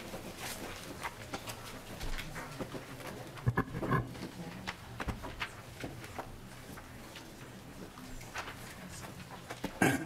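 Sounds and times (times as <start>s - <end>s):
small clicks and rustles: 0.0s - 9.8s.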